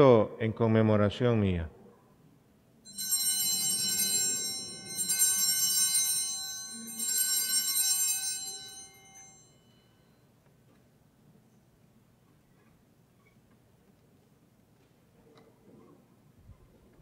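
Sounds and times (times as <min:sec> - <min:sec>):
altar bells ringing: 0:02.9 - 0:10.2.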